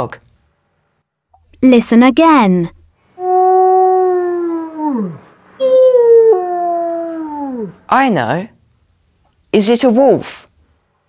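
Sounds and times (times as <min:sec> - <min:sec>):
wolf howling: 0:03.2 - 0:07.9.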